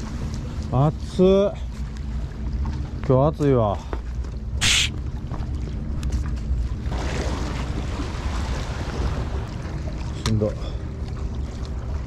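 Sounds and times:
sea: 0.0s - 12.0s
wind: 0.0s - 12.0s
hiss: 4.6s - 4.9s.

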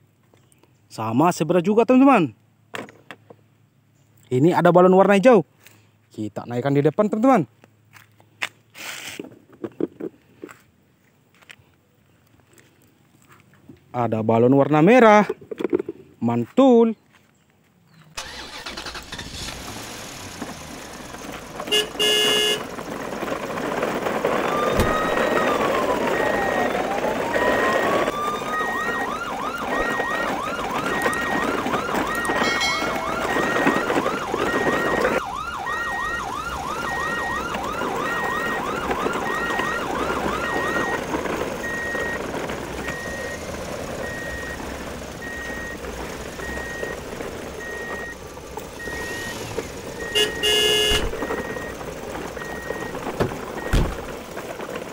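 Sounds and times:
electronic siren wailing and yelping: 24.4s - 41.0s
horn blast: 32.4s - 33.8s, 50.2s - 51.1s.

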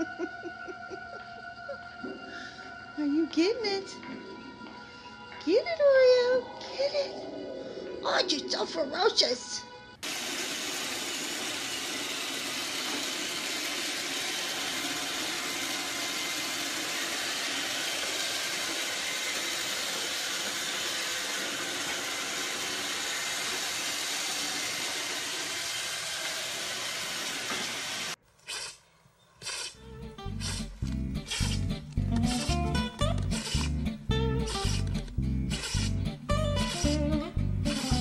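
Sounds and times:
robot vacuum whirring: 10.0s - 28.8s, 29.4s - 33.8s, 34.4s - 35.9s, 36.6s - 37.0s, 37.7s - 38.0s.

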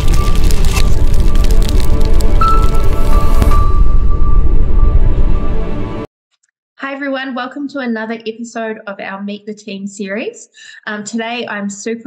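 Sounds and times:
crackling sound effects: 0.0s - 5.2s
heavy low rumble: 0.0s - 6.1s
loud logo music: 0.0s - 6.1s.

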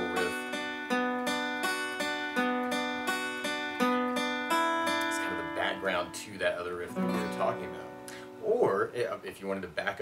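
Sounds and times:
acoustic guitar notes ringing: 0.0s - 9.2s.

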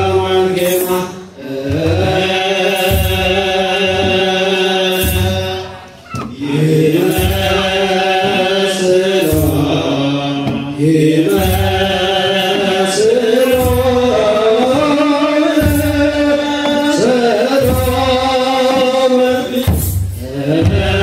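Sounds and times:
deep drum beats: 0.0s - 21.0s
group chanting through microphones: 0.0s - 21.0s.

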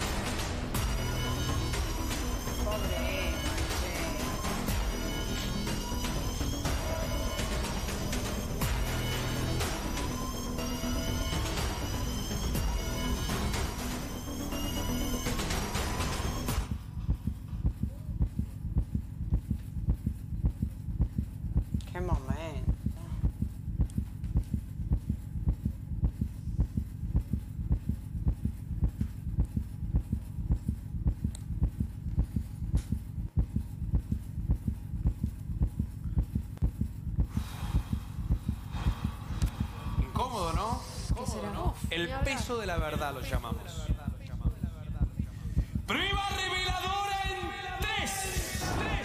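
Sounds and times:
heartbeat thumping: 0.0s - 13.7s, 16.4s - 49.0s
suspense music: 0.0s - 49.0s
pulse of deep thuds: 16.5s - 21.8s, 22.6s - 40.3s, 43.8s - 47.4s.

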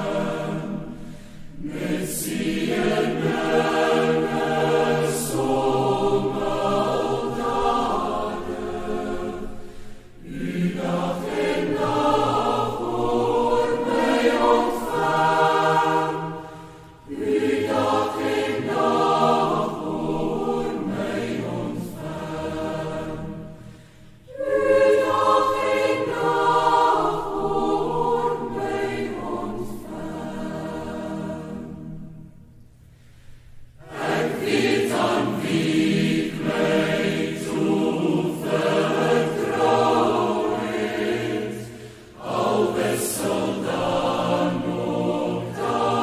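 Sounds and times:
choir singing: 0.0s - 32.6s, 33.6s - 46.0s.

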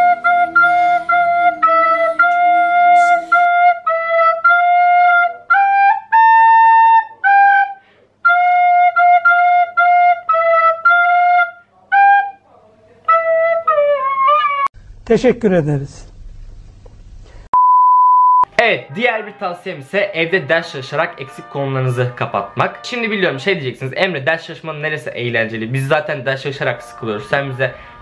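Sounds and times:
recorder playing a simple tune: 0.0s - 12.4s, 20.2s - 23.7s.

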